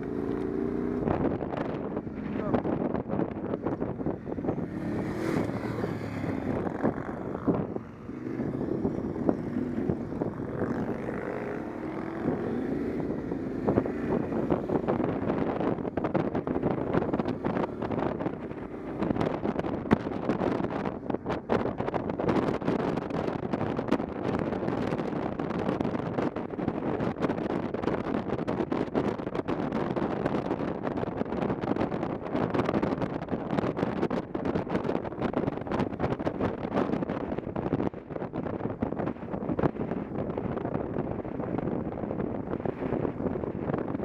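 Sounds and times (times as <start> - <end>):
motorcycle engine revving: 0.0 - 26.2
wind buffeting microphone: 0.0 - 44.0.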